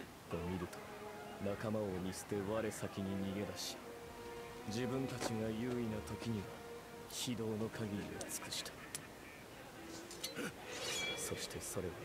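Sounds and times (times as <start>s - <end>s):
man speaking quietly: 0.0s - 10.1s.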